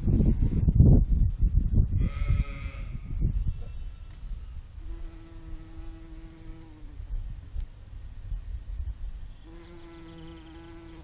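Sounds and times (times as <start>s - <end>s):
bumblebee buzzing: 4.0s - 7.2s, 9.3s - 11.0s.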